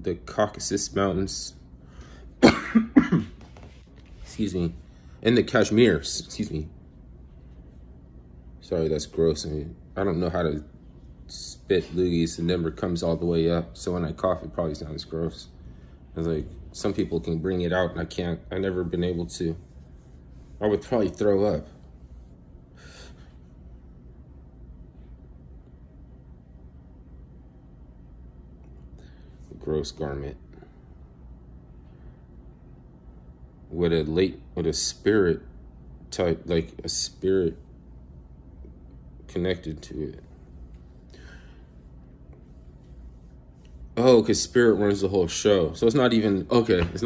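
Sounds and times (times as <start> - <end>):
low room hum: 0.0 - 47.0
man coughing harshly: 2.4 - 3.4.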